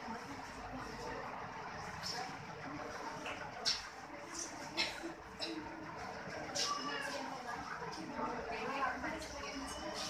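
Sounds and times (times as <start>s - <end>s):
hum of busy hall: 0.0s - 10.0s.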